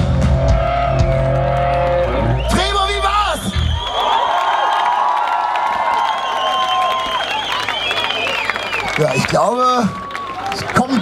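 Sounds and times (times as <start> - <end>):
crowd cheering and screaming: 0.0 - 11.0
people clapping: 3.9 - 11.0.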